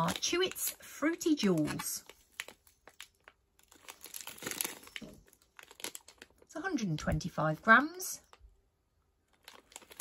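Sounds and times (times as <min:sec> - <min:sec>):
plastic sweet packet crinkling: 0:00.0 - 0:10.0.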